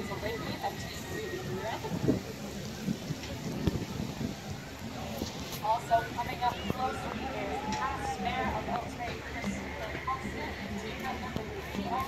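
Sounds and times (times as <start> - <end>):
outdoor noise hiss: 0.0 - 12.0
people talking indistinctly: 0.0 - 12.0.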